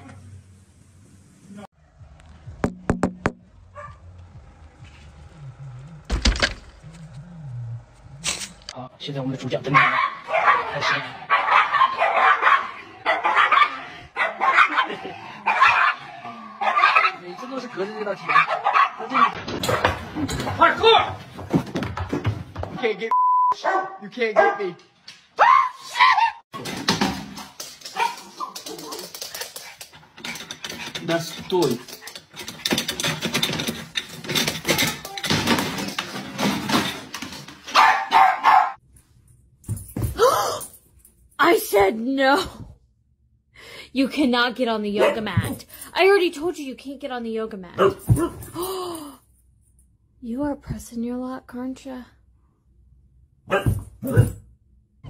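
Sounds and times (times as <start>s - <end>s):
dog yelp: 9.7s - 17.2s, 18.3s - 19.4s, 25.4s - 26.4s, 37.7s - 38.8s.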